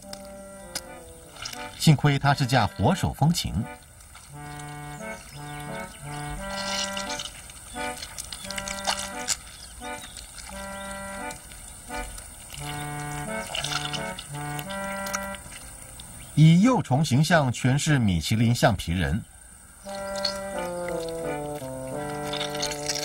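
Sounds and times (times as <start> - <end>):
accordion playing bouncy tune: 0.0 - 15.6, 19.8 - 23.0
wet squishing noises: 0.0 - 16.4, 19.8 - 23.0.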